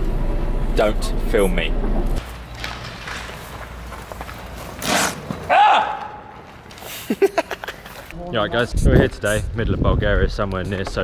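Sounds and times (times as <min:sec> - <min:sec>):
footsteps on rubble and stones: 0:02.2 - 0:05.5.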